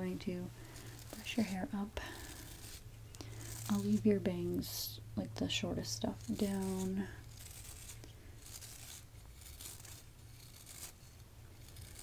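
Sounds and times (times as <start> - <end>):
hairbrush swishing over microphone: 0.8 - 4.6.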